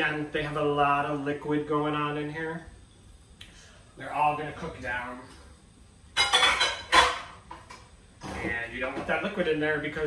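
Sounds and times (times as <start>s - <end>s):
dishes clattering in sink: 6.2s - 9.2s.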